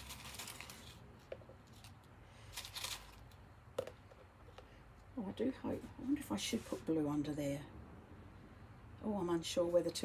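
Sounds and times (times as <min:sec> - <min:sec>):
faint crinkly rustling: 0:00.0 - 0:03.5.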